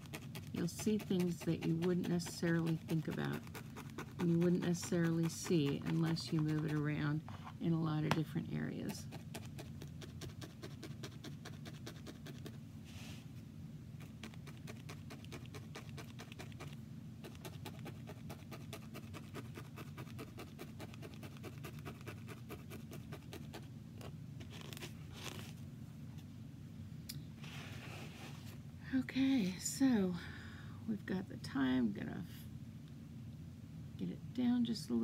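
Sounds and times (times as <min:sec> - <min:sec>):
felting needle stabbing wool: 0:00.0 - 0:07.1.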